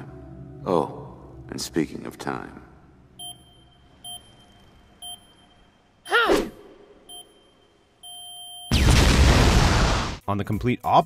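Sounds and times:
timer short high beeps: 0:03.2 - 0:05.7, 0:07.1 - 0:08.7.

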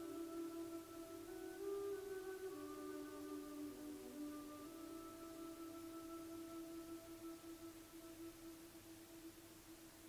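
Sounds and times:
soft ambient music note: 0:00.0 - 0:10.0.

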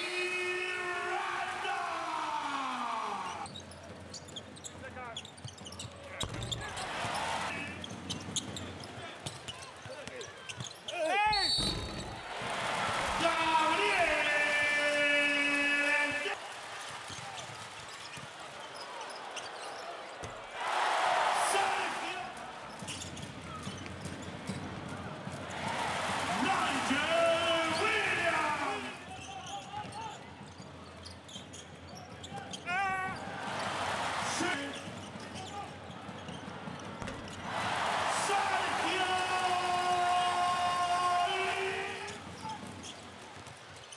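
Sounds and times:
sportscaster shouting: 0:00.0 - 0:03.4, 0:12.9 - 0:16.4, 0:20.6 - 0:22.5, 0:25.6 - 0:29.0, 0:37.5 - 0:42.2
arena noise: 0:00.0 - 0:43.8
court squeaks: 0:03.2 - 0:12.3, 0:17.1 - 0:20.4, 0:22.7 - 0:24.7, 0:29.1 - 0:33.4, 0:34.3 - 0:37.5, 0:41.3 - 0:43.9
basketball bouncing on court: 0:03.4 - 0:07.2, 0:22.7 - 0:26.2, 0:29.1 - 0:33.2, 0:34.8 - 0:37.5
crowd noise: 0:05.3 - 0:43.9.

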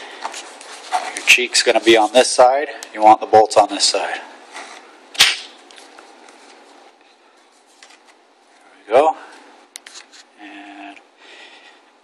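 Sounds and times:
sharp plastic snap: 0:05.2 - 0:05.6.

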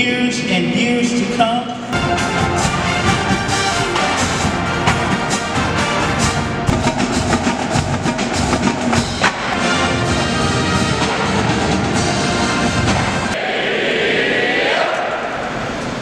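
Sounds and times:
brass chords: 0:01.9 - 0:13.4
snare and tenor drums: 0:01.9 - 0:13.4.

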